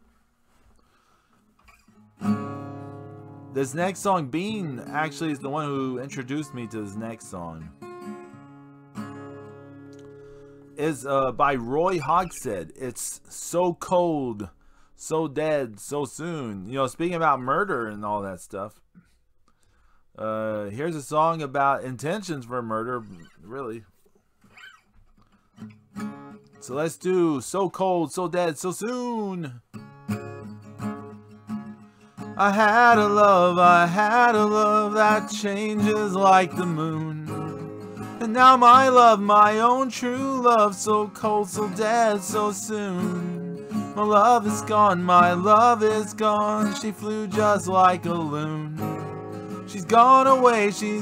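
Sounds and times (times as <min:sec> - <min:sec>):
acoustic guitar note ringing: 0:01.6 - 0:14.9, 0:29.7 - 0:51.0
acoustic guitar strum: 0:01.6 - 0:15.5, 0:24.5 - 0:27.4, 0:28.9 - 0:51.0.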